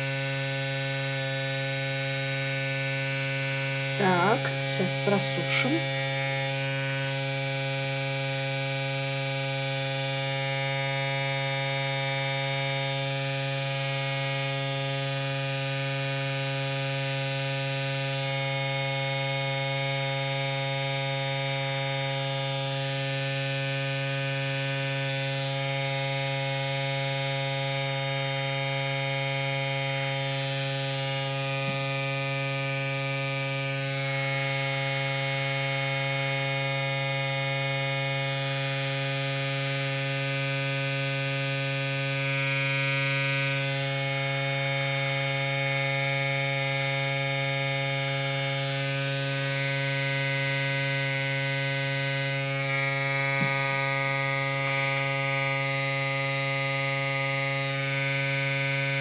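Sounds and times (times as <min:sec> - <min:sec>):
airbrush compressor humming: 0:00.0 - 0:37.4, 0:42.2 - 0:59.0
airbrush air hiss: 0:01.6 - 0:02.3, 0:31.6 - 0:32.4.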